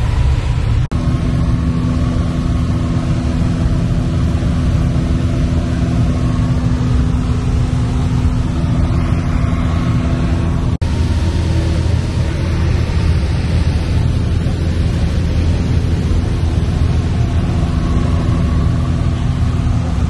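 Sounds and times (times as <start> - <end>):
airplane engine and propeller droning: 0.0 - 20.0.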